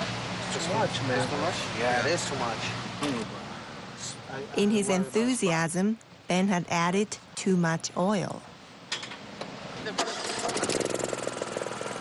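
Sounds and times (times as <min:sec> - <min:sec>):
generator engine starting and running: 0:09.9 - 0:12.0.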